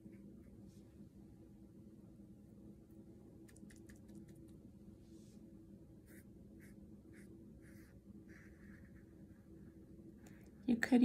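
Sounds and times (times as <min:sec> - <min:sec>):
brush strokes on paper: 0:05.0 - 0:09.4.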